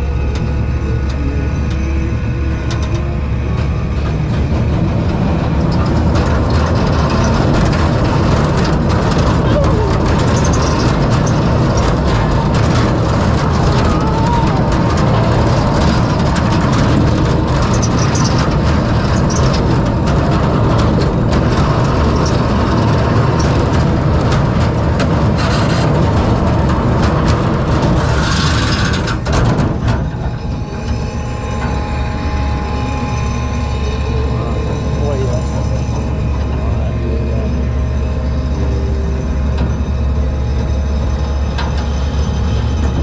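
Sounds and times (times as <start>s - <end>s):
roller coaster wheels rumbling: 0.0s - 43.0s.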